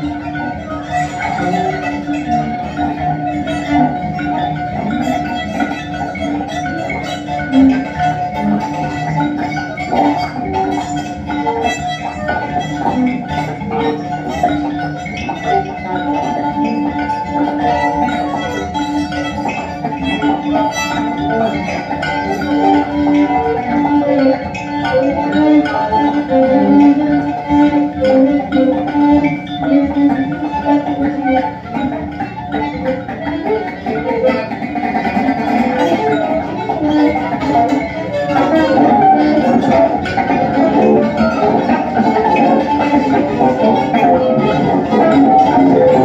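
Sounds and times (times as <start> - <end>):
alto saxophone: 0.0 - 46.0
electric guitar: 0.0 - 46.0
kalimba notes ringing: 0.0 - 46.0
violin: 0.0 - 46.0.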